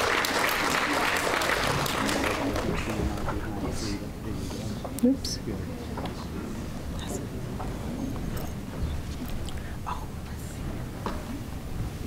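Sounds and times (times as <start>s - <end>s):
murmuring of voices: 0.9s - 11.4s.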